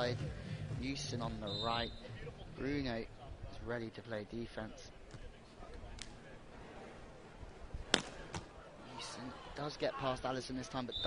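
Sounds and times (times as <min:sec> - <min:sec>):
murmur of stadium crowd: 0:00.0 - 0:11.0
volleyball smacks: 0:07.9 - 0:08.5.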